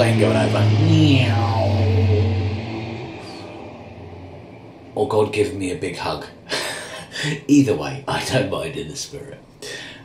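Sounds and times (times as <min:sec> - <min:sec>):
aircraft drone overhead: 0:00.0 - 0:07.3.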